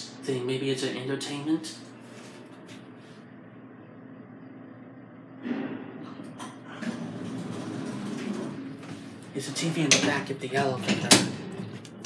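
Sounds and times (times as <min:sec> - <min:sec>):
elevator cab hum: 0:01.7 - 0:12.0.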